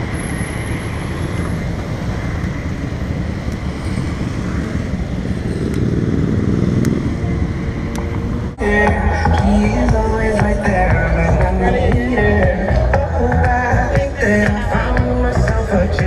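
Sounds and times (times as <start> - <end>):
cars and motorbikes driving past: 0.0 - 16.0.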